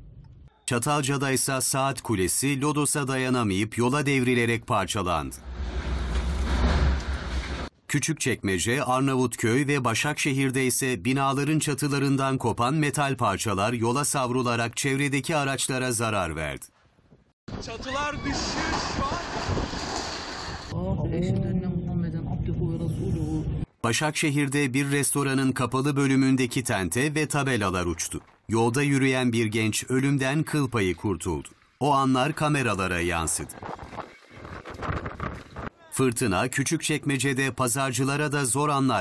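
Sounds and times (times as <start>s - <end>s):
strong wind on microphone: 17.5s - 23.7s, 33.4s - 35.7s.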